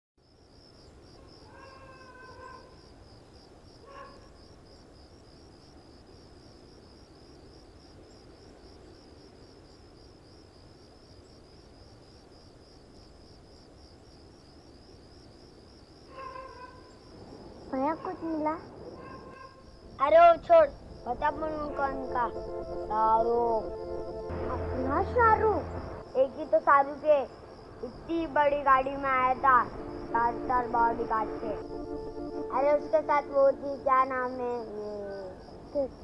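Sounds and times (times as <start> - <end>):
crickets trilling: 0.2 - 36.0
cat meowing: 1.5 - 2.7.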